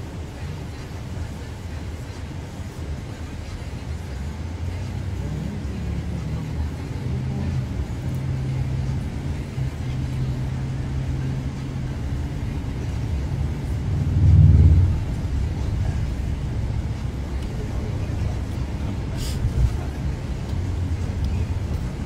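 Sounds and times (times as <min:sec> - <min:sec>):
car cabin rumble: 0:04.2 - 0:22.0.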